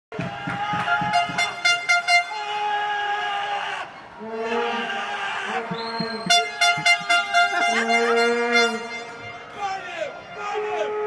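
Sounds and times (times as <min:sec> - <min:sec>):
loud horn blasts: 0:00.8 - 0:02.8, 0:04.2 - 0:11.0.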